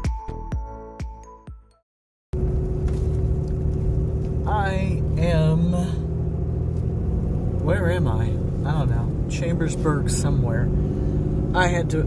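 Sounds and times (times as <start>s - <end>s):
truck engine and road noise: 2.3s - 12.0s.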